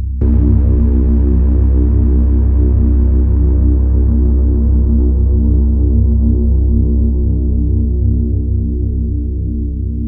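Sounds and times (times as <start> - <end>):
ambient synthesizer drone: 0.0 - 10.0.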